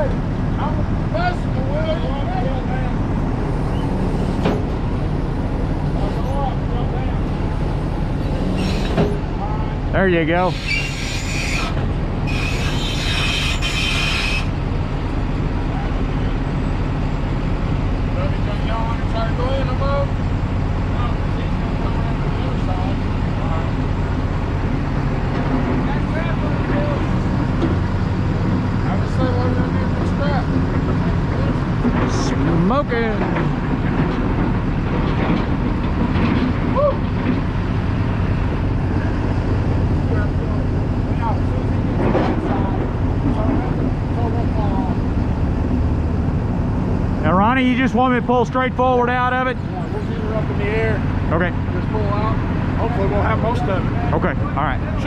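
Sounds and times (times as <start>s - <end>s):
forklift engine running: 0.0s - 55.0s
metal-on-metal screech: 8.2s - 9.2s, 10.4s - 14.6s.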